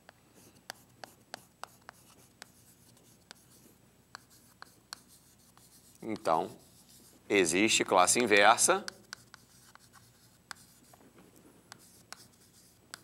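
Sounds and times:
chalk tapping and scratching on board: 0:00.0 - 0:11.0, 0:11.7 - 0:13.0.

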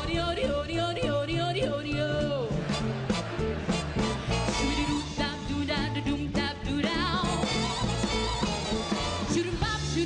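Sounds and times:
swing jazz backing band: 0:00.0 - 0:10.0.

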